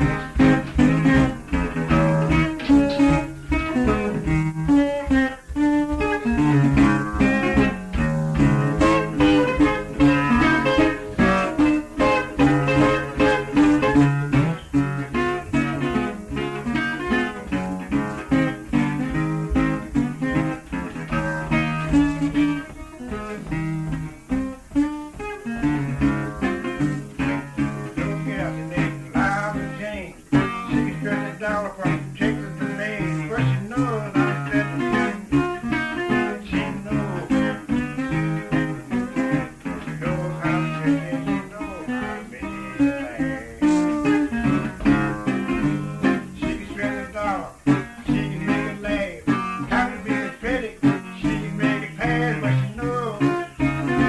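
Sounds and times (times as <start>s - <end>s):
acoustic guitar playing blues: 0.0s - 54.0s.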